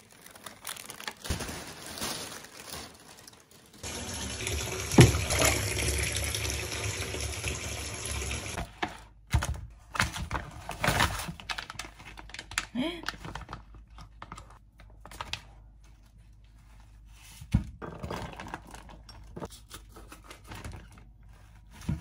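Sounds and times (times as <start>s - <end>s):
plastic packaging crinkling: 0.0s - 3.9s, 10.2s - 15.6s
tap running into bathtub: 3.9s - 8.6s.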